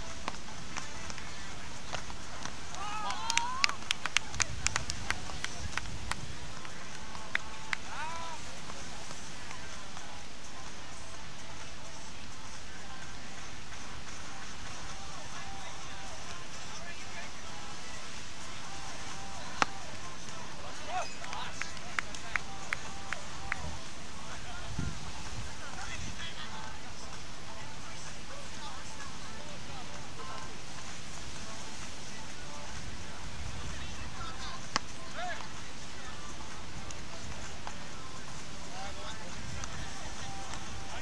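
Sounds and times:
background noise: 0.0s - 41.0s
background voices: 0.0s - 41.0s
paddles hitting ball: 19.5s - 19.8s.

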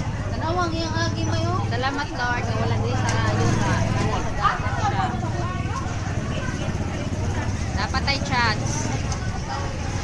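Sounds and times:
people talking: 0.0s - 10.0s
small motorcycle engine running: 0.0s - 10.0s.

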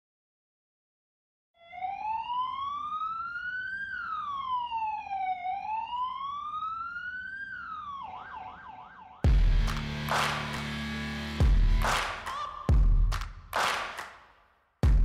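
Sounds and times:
police siren wailing and yelping: 1.6s - 9.4s.

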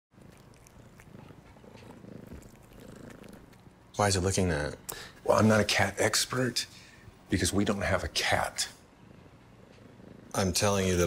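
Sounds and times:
cat purring: 0.2s - 3.9s, 7.6s - 11.0s.

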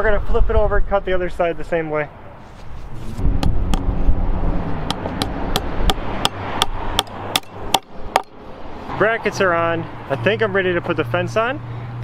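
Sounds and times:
hammer striking metal bracket: 4.8s - 8.4s.

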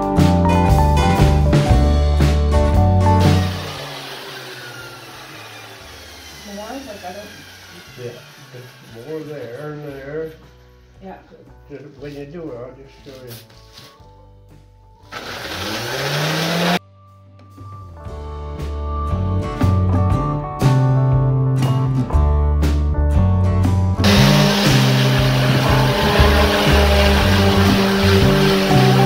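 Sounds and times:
electric sander motor whine: 3.2s - 10.0s, 15.1s - 16.8s, 24.0s - 29.0s.

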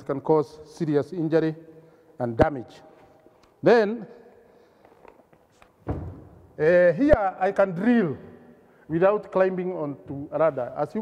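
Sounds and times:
man's voice: 6.6s - 11.0s.

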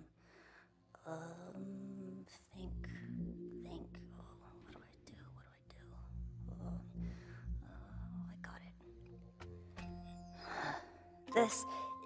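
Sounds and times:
droning background music: 0.0s - 12.0s.

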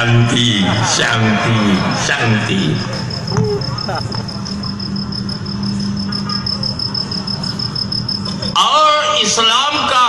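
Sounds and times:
faint voices: 0.0s - 7.3s
cricket trilling: 0.9s - 9.4s.

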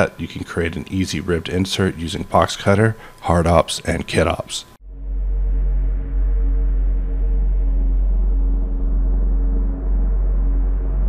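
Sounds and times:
dark ambient music: 4.8s - 11.0s.

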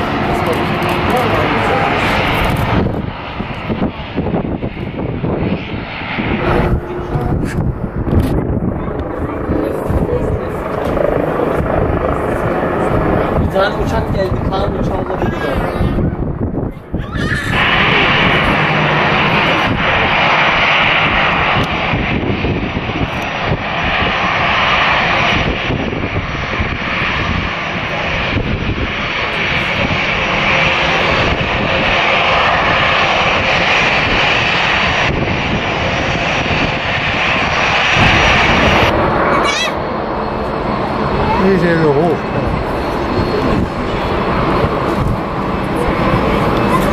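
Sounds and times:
aircraft engines rumbling: 0.0s - 46.9s.

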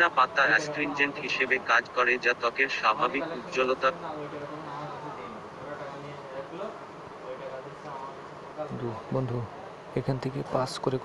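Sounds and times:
faint buzzing hum: 0.0s - 11.0s.

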